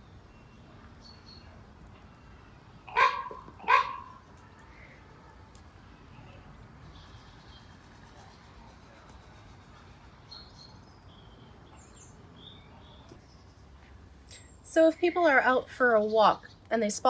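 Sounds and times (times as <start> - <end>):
dog barking: 2.9 - 4.2.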